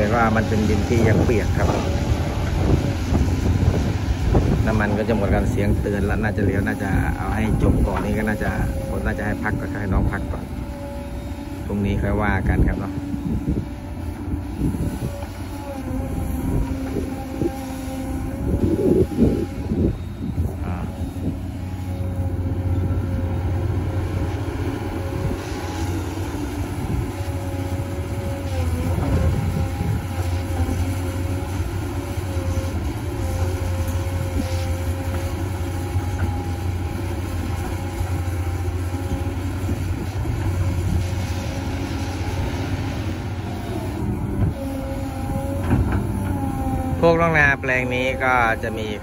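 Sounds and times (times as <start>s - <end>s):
engine whine: 0.0s - 49.0s
excavator engine droning under load: 0.0s - 49.0s.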